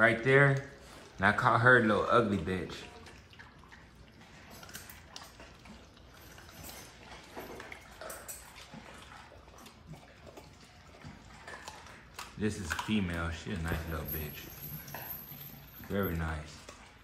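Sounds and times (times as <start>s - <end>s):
puppies chewing and licking: 0.0s - 17.0s.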